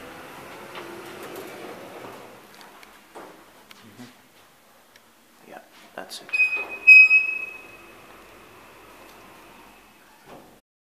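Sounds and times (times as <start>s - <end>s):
elevator chime ding: 6.3s - 8.0s.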